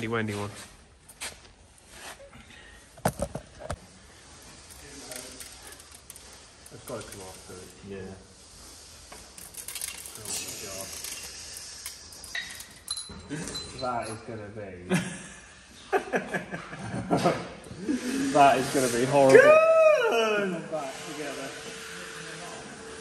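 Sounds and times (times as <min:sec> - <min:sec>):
metal gear parts clinking: 0:11.8 - 0:14.2.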